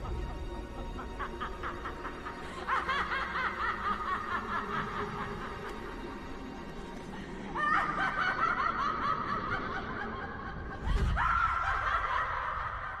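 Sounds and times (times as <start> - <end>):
woman laughing wildly: 0.0 - 6.0, 7.5 - 13.0.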